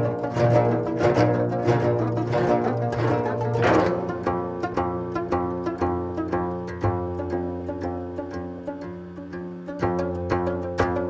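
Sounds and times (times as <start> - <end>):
orchestra sustained low tones: 0.0 - 11.0
zither plucked notes: 0.0 - 11.0.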